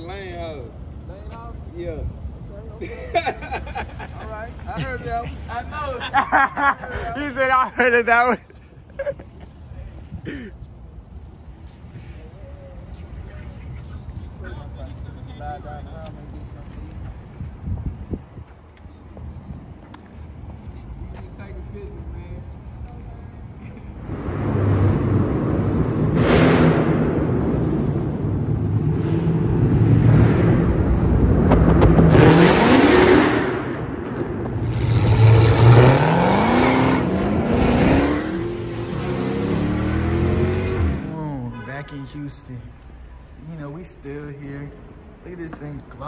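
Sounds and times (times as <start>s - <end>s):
car engines accelerating: 23.7s - 41.3s.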